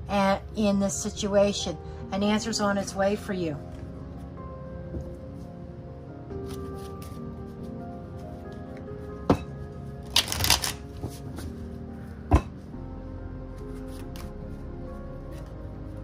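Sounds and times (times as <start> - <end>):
soft background music: 0.0 - 16.0
cards riffle shuffling: 6.4 - 7.3, 10.0 - 11.6, 13.7 - 14.6.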